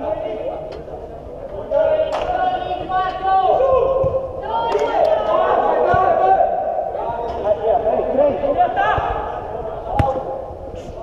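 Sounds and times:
players shouting: 0:01.8 - 0:10.3.

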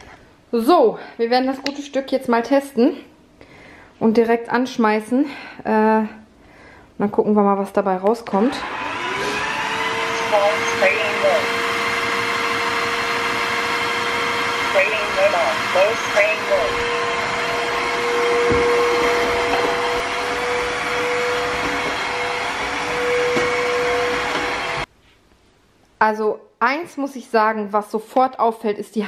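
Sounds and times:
vacuum motor whining: 0:08.3 - 0:24.9.

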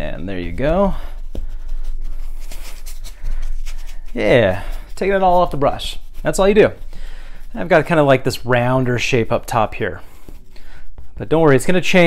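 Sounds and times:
paintbrush scratching on canvas: 0:00.0 - 0:12.0.

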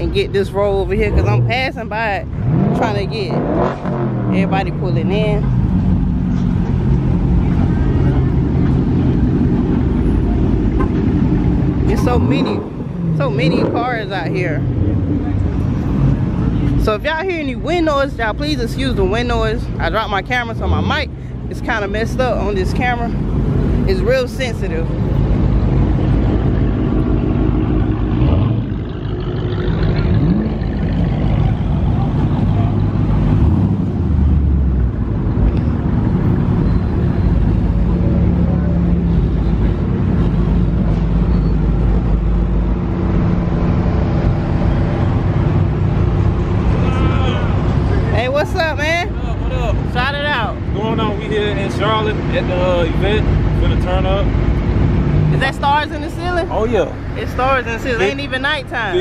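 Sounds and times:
car engines idling: 0:00.0 - 0:59.0.

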